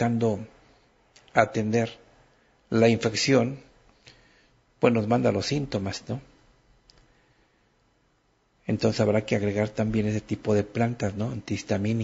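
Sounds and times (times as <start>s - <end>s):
man speaking: 0.0s - 0.6s, 1.2s - 2.1s, 2.7s - 3.8s, 4.8s - 6.4s, 8.6s - 12.0s
faint click: 6.8s - 7.1s.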